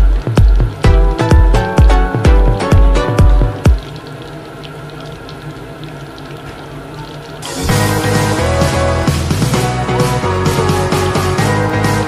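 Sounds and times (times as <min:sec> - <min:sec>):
oil crackles: 0:03.6 - 0:07.7
chicken skins sizzling in oil: 0:07.4 - 0:12.0.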